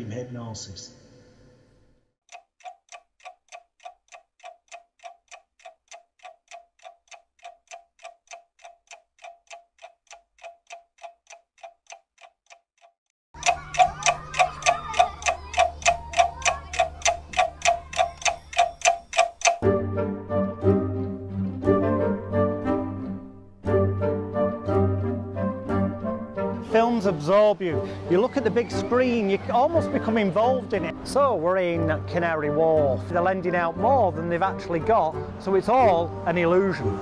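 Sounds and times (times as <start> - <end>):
clock ticking: 2.3 - 19.6, 26.8 - 32.3.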